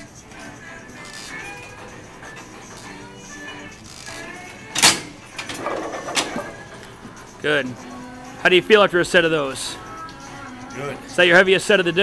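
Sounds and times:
background music: 0:00.0 - 0:12.0
gym ambience: 0:00.0 - 0:12.0
weight plates clanking: 0:04.8 - 0:07.9.

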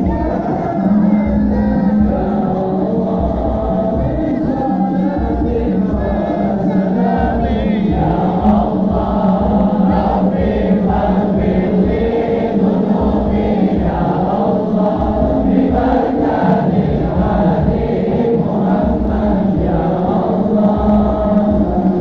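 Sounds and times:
crowd of men chanting in unison: 0:00.0 - 0:22.0
low regular beat: 0:00.0 - 0:22.0.

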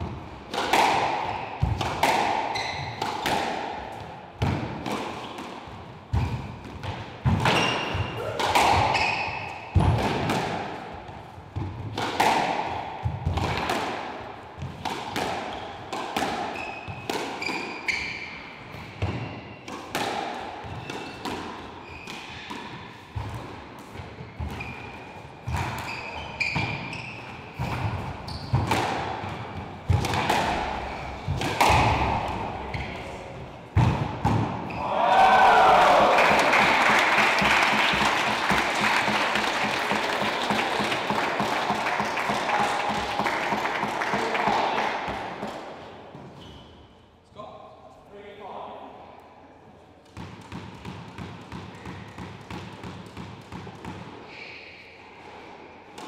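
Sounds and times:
squash ball smacking walls: 0:00.0 - 0:18.2, 0:18.8 - 0:33.0, 0:33.7 - 0:34.9
shoes squeaking on wooden floor: 0:02.5 - 0:03.0, 0:25.8 - 0:28.7
crowd applauding: 0:35.5 - 0:44.9.

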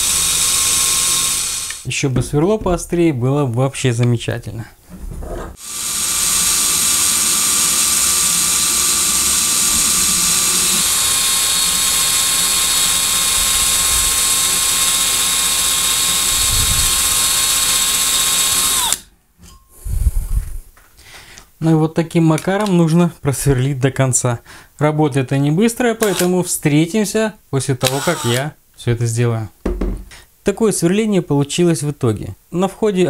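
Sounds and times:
cordless drill boring metal: 0:00.0 - 0:01.9, 0:05.6 - 0:19.1, 0:26.0 - 0:26.4, 0:27.8 - 0:28.4.

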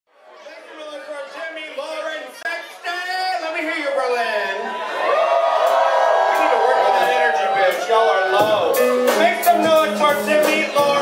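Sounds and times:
voices talking in large room: 0:00.1 - 0:11.0.

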